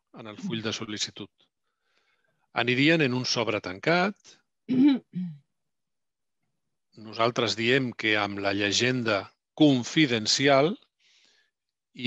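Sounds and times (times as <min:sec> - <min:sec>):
person speaking: 0:00.2 - 0:01.2.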